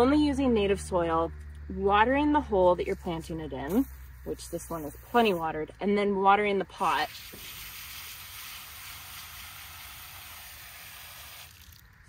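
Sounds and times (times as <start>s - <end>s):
hose water spraying into pot: 3.7s - 5.6s, 6.8s - 11.8s.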